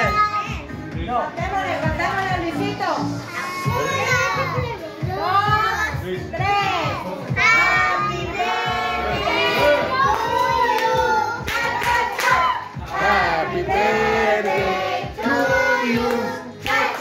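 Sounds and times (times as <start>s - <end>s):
group singing birthday song: 6.4s - 17.0s.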